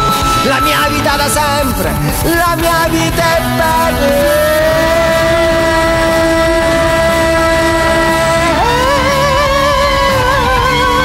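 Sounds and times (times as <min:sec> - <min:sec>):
electric guitar lead note: 0:00.0 - 0:11.0
musical accompaniment: 0:00.0 - 0:11.0.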